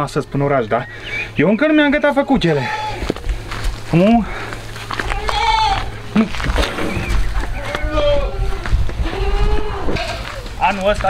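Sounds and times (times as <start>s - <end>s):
goat bleating: 2.4s - 3.2s, 4.9s - 6.4s, 7.4s - 10.8s.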